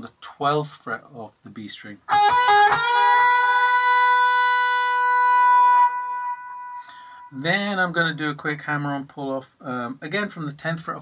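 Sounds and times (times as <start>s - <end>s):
distorted electric guitar note: 2.1s - 7.4s.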